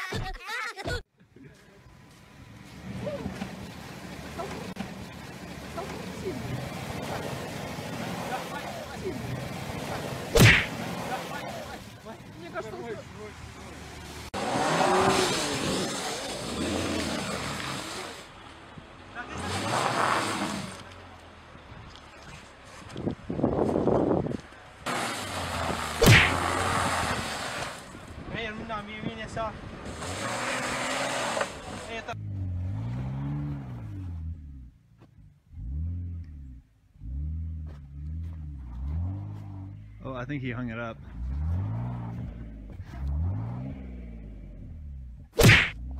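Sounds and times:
car engine revving: 2.5 - 22.1, 24.8 - 28.2, 29.3 - 45.9
wheels spinning in snow: 14.1 - 18.4.

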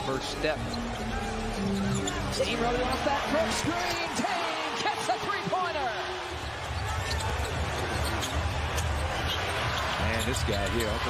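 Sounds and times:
arena crowd din: 0.0 - 11.0.

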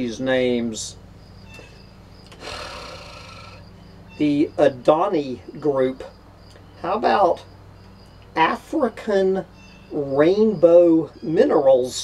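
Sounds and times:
low steady hum: 0.0 - 12.0
person breathing in: 2.3 - 3.6.

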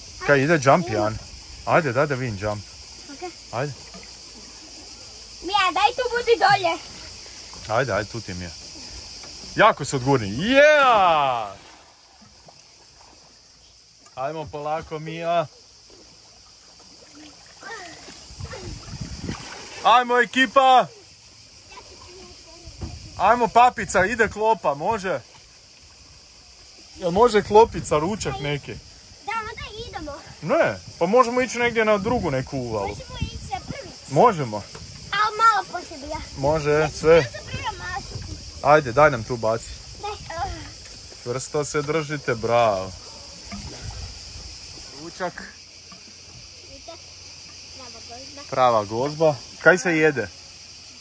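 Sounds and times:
water washing: 0.0 - 50.8
cicadas droning: 0.0 - 51.0
soft low thump: 22.7 - 23.2.

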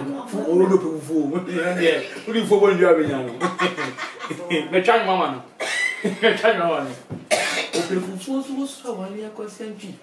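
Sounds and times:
people talking: 0.0 - 5.4
sharp cough: 7.3 - 8.0.

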